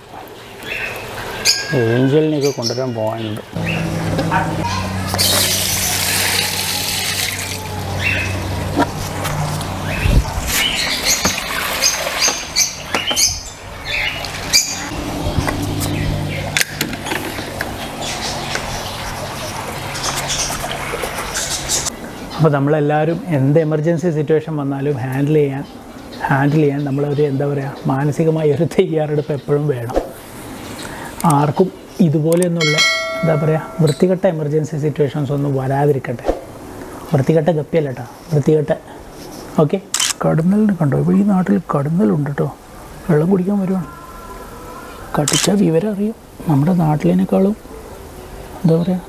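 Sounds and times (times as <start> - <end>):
bright bell ding: 32.6 - 34.1.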